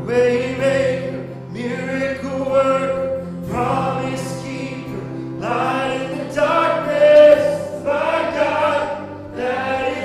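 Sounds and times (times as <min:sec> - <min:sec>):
singers holding long notes: 0:00.0 - 0:10.0
worship band: 0:00.0 - 0:10.0.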